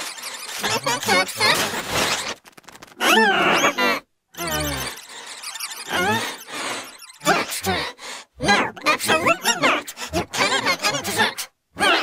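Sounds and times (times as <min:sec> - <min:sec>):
high squealing cartoon voice: 0:00.0 - 0:02.3, 0:03.0 - 0:12.0
deep warped cartoon voice: 0:00.5 - 0:01.7, 0:03.0 - 0:05.0, 0:05.9 - 0:06.4, 0:07.2 - 0:12.0.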